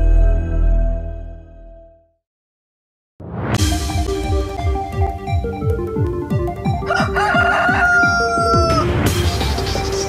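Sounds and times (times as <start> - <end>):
electronic music with kick drum: 3.6 - 10.0
rooster crowing: 6.8 - 8.9.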